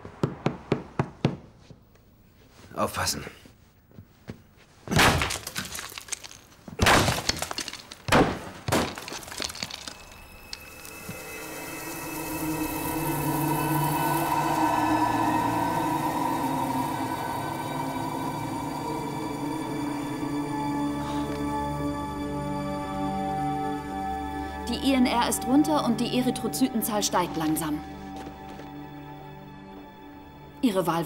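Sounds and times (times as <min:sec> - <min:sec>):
hammer smashing plaster wall: 0:04.9 - 0:10.0
crumbling debris: 0:04.9 - 0:11.5
background music with held tones: 0:10.2 - 0:31.0.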